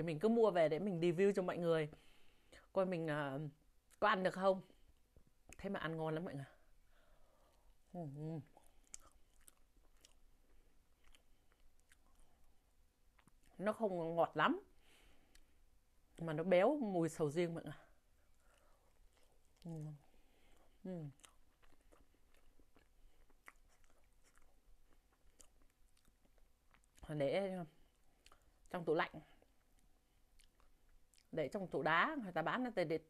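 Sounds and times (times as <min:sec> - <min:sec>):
chewing mouth sounds: 0:08.4 - 0:13.6, 0:18.2 - 0:27.1, 0:27.8 - 0:28.7, 0:29.3 - 0:31.3.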